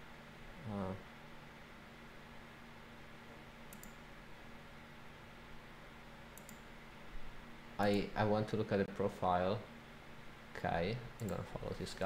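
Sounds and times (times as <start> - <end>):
low steady hum: 0.0 - 12.0
man speaking: 0.6 - 1.0, 10.6 - 12.0.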